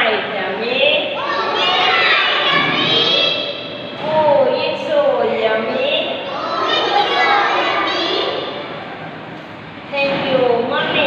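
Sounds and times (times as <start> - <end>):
children chanting a rhyme: 1.1 - 4.1, 6.1 - 8.8.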